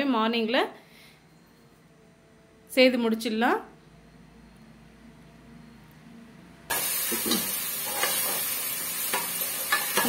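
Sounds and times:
metal spatula scraping pan: 6.7s - 10.0s
vegetables sizzling in oil: 6.7s - 10.0s.

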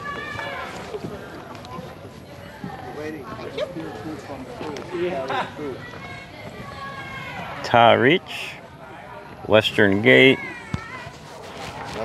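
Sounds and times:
footsteps on wooden boardwalk: 0.0s - 6.9s, 10.7s - 12.0s
people talking: 0.0s - 12.0s.

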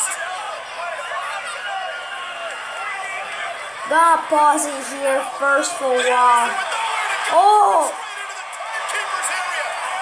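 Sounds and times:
arena crowd noise: 0.0s - 10.0s
commentator talking: 3.8s - 6.6s, 7.3s - 8.0s.

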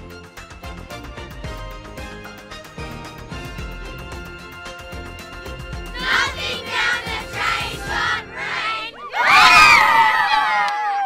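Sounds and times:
children shouting and cheering: 5.9s - 11.0s.

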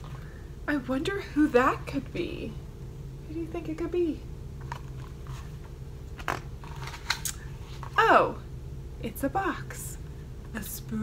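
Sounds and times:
low room hum: 0.0s - 11.0s
book pages turning: 4.6s - 8.0s.

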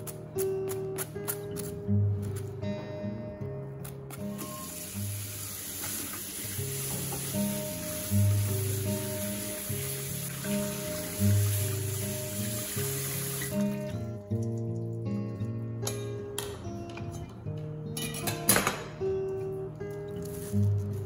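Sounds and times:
tap water running into sink: 4.4s - 13.9s.

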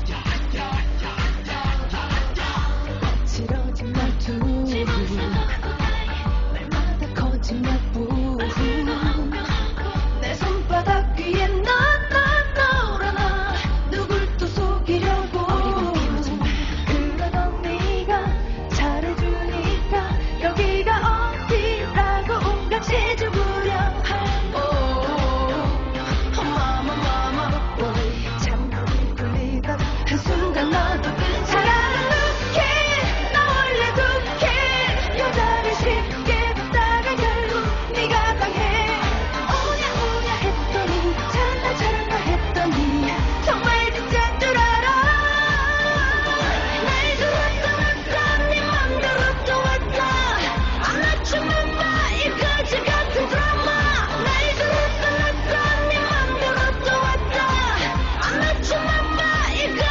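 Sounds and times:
kick drum beat: 0.0s - 26.9s
pop backing track with beat: 0.0s - 59.9s
woman singing pop song: 0.0s - 59.9s.

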